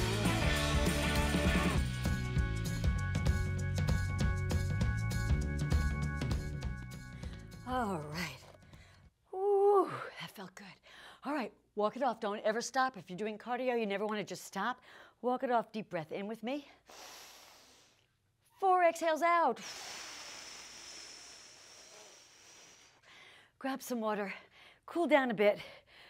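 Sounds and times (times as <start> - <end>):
slow breath out: 7.0 - 7.6, 16.8 - 18.1, 19.6 - 23.6
woman's wordless exclamation: 7.6 - 8.5, 9.3 - 10.5.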